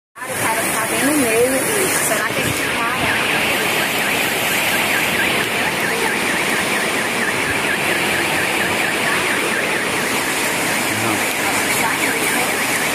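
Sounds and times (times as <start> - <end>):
car alarm warbling: 0.2 - 12.9
floodwater rushing: 0.2 - 12.9.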